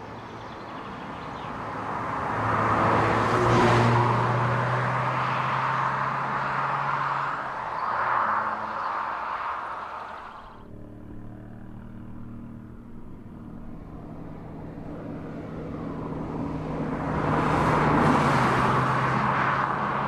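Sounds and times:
car engine humming: 0:00.0 - 0:19.5
road and tyre noise: 0:00.0 - 0:20.0.

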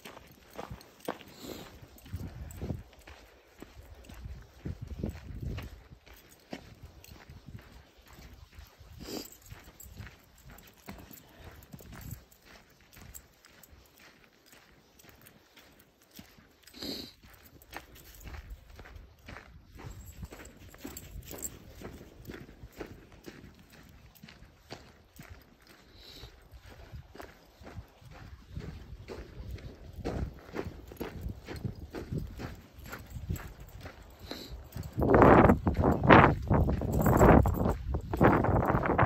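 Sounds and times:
footsteps on dirt trail: 0:00.0 - 0:39.0.

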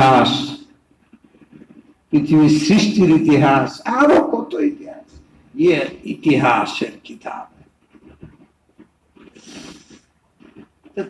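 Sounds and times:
man breathing in close: 0:09.3 - 0:10.1.

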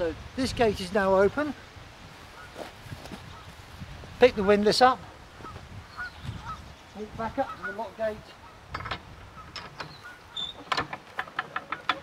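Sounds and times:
metal clicks and clanks: 0:08.7 - 0:12.0
windlass winding clicks: 0:08.7 - 0:12.0.

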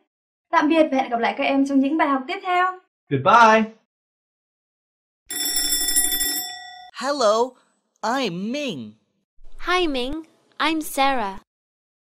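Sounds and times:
electric school bell ringing: 0:05.3 - 0:07.0.

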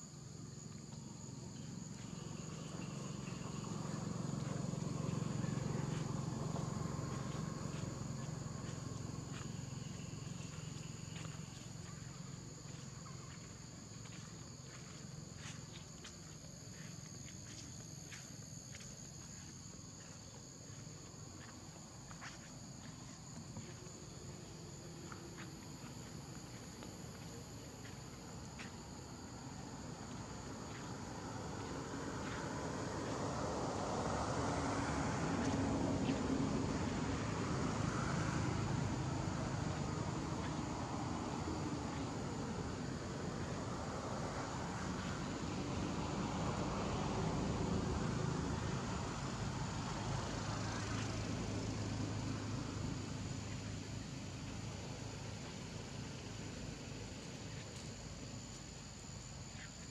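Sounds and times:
low engine drone: 0:01.6 - 0:13.3.

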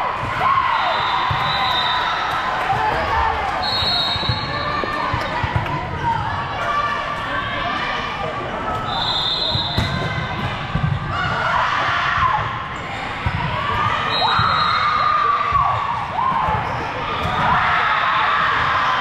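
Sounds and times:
voices calling and chattering: 0:00.9 - 0:19.0.

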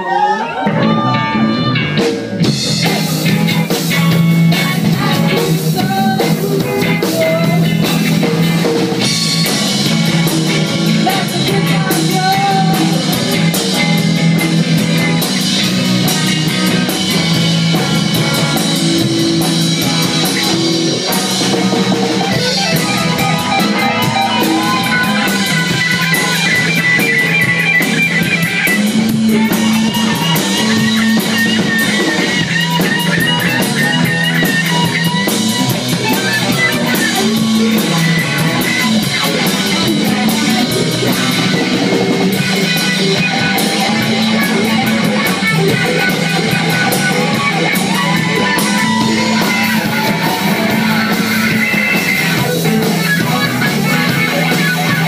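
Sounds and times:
electric guitar lead with bent notes: 0:00.0 - 0:55.0
live rock band playing: 0:00.0 - 0:55.0.

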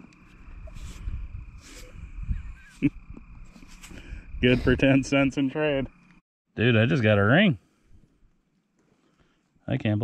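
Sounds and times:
wind buffeting microphone: 0:00.4 - 0:05.2.

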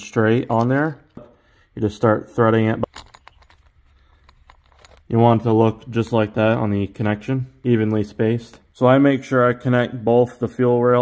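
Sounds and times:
small metal clicks: 0:02.8 - 0:05.1.

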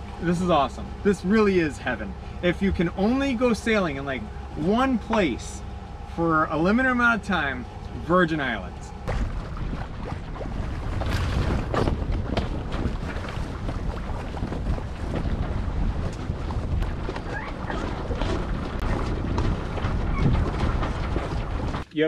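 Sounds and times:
sails and rigging knocking: 0:00.0 - 0:22.0
wind buffeting microphone: 0:08.9 - 0:21.8.

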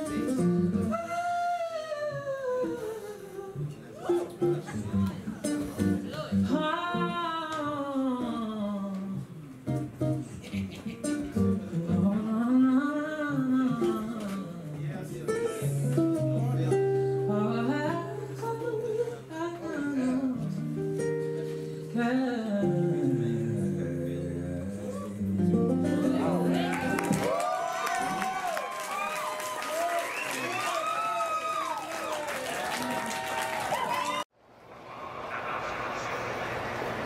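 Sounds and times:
acoustic guitar strumming: 0:00.0 - 0:01.0, 0:20.4 - 0:27.2
acoustic guitar: 0:00.0 - 0:27.4
man singing a long note: 0:22.0 - 0:26.8.

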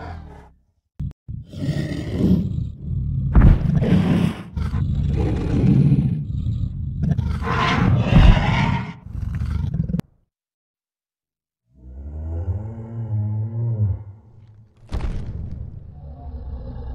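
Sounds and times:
dinosaur roaring and growling: 0:00.0 - 0:00.6, 0:01.4 - 0:10.0, 0:11.8 - 0:14.3, 0:15.9 - 0:16.9.

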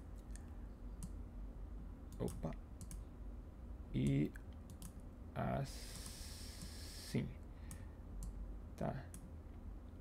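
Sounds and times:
computer mouse clicking: 0:02.1 - 0:03.0, 0:04.0 - 0:05.0, 0:05.9 - 0:06.8.

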